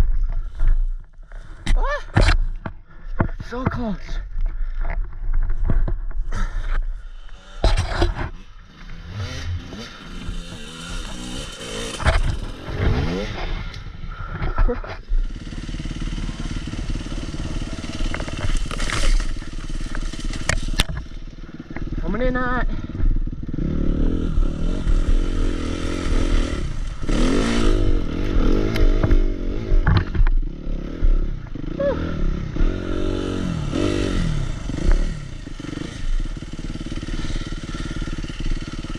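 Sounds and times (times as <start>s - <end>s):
dirt bike engine revving: 6.3s - 38.9s.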